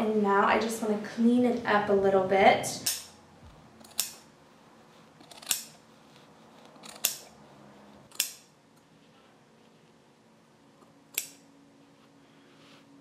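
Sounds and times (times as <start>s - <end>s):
scissors snipping yarn: 5.2s - 5.8s, 6.7s - 7.4s.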